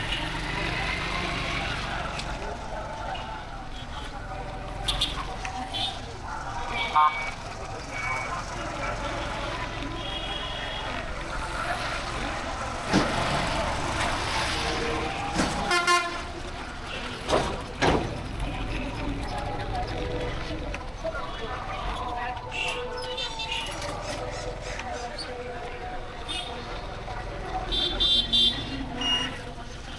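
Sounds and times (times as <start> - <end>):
vehicle horns beeping: 15.6 - 16.3, 27.6 - 29.4.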